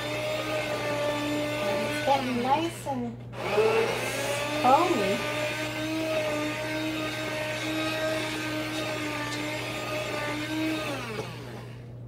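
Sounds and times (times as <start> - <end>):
immersion blender motor hum: 0.0 - 11.9.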